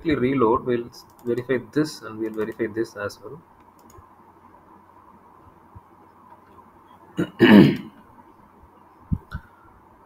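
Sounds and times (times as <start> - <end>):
person clearing throat: 7.2 - 7.9.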